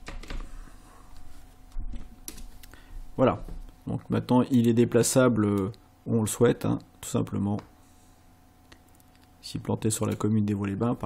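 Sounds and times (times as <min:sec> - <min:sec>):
man speaking: 0:03.2 - 0:07.7, 0:09.4 - 0:11.0.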